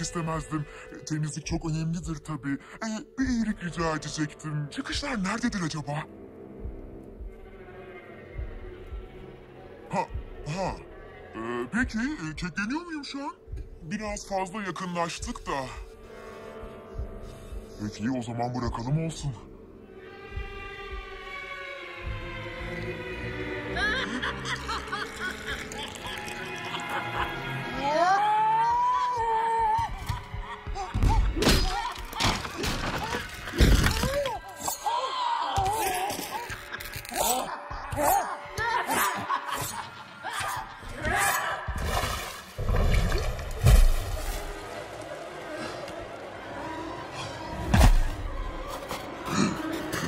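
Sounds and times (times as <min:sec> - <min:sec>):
horror film score: 0:00.0 - 0:50.0.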